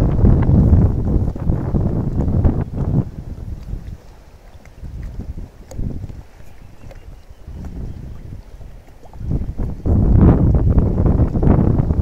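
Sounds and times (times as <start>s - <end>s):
rippling river water: 0.0s - 12.0s
wind buffeting microphone: 0.0s - 12.0s.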